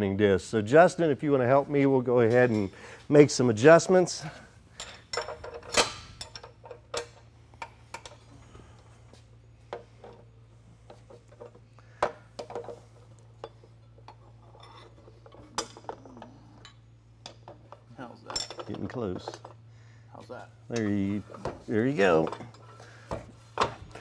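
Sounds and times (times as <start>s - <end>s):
low steady hum: 0.0s - 24.0s
wrenches clinking on steel: 4.7s - 7.2s, 13.4s - 19.6s.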